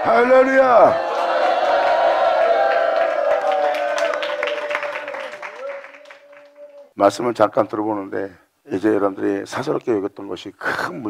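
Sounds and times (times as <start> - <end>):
scattered clapping: 2.6 - 6.8.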